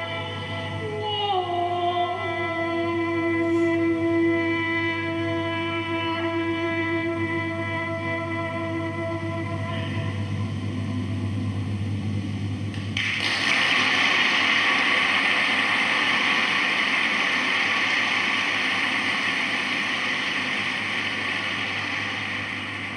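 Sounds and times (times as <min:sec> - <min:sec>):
audience applause: 0:13.0 - 0:22.9.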